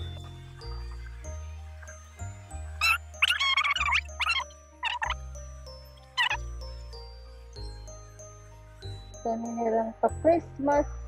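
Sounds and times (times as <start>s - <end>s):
high squeaky bending sounds: 2.8s - 5.2s, 6.2s - 6.4s.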